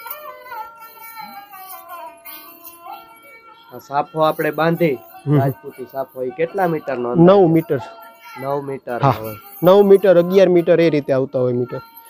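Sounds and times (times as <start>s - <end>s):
man talking: 3.7s - 11.8s.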